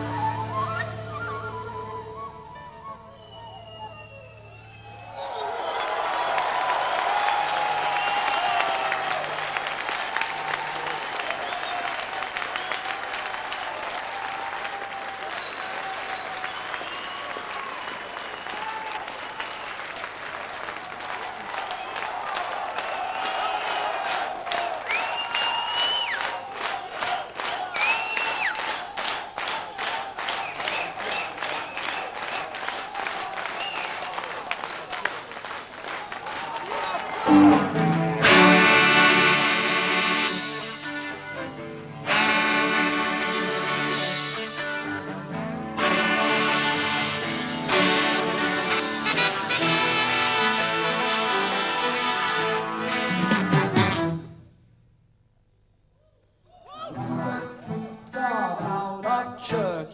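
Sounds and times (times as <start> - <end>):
whistles: 0.0 - 6.6, 7.8 - 8.7, 11.4 - 13.0, 15.2 - 20.0, 22.8 - 23.9, 24.8 - 26.4, 27.7 - 28.8, 30.3 - 34.1
audience applauding: 3.2 - 41.2
rhythmic clapping: 5.8 - 40.8.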